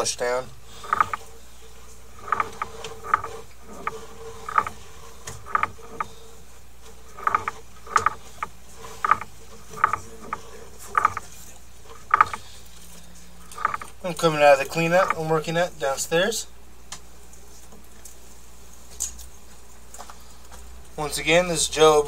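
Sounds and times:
steady low hum: 0:00.0 - 0:22.0
cable reel clacks: 0:00.7 - 0:01.4, 0:02.0 - 0:06.2, 0:06.8 - 0:12.6, 0:13.4 - 0:15.3.

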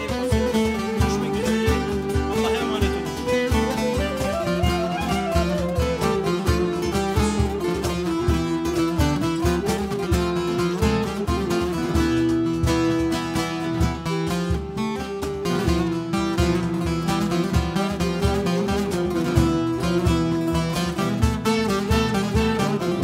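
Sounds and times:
clarinet melody: 0:00.0 - 0:13.0
strummed acoustic guitar: 0:00.0 - 0:23.0.

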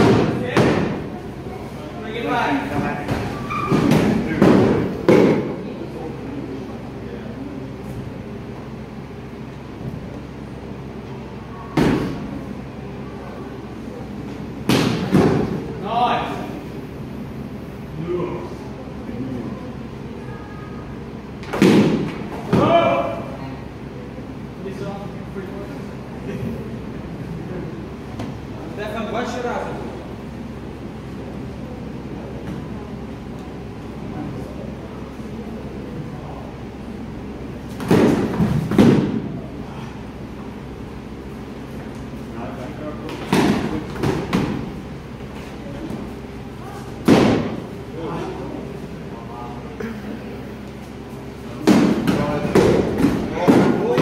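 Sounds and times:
padded swords striking shields: 0:21.5 - 0:23.0, 0:37.7 - 0:39.3, 0:43.1 - 0:44.6, 0:47.0 - 0:47.6, 0:51.6 - 0:54.0.

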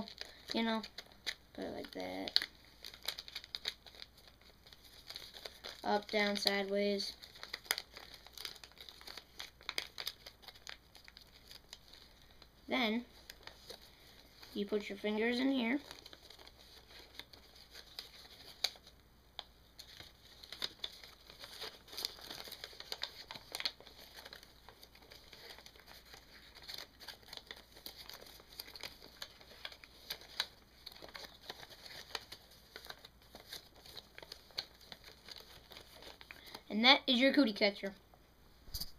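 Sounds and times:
paper rustling and crinkling: 0:00.0 - 0:36.7
paper crackles: 0:00.0 - 0:38.0.

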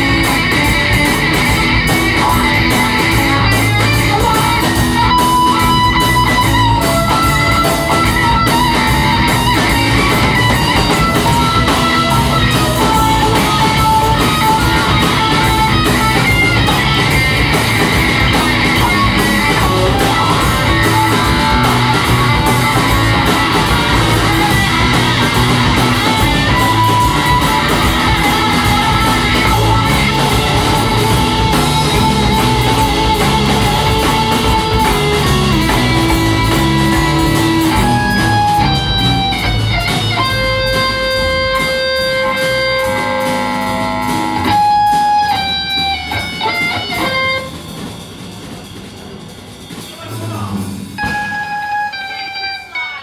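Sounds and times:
plucked lead guitar melody: 0:00.0 - 0:47.6, 0:51.0 - 0:53.0
drums: 0:00.0 - 0:53.0.

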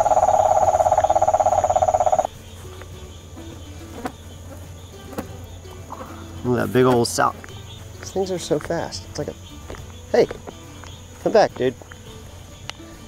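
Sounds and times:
toad trilling: 0:00.0 - 0:02.3.

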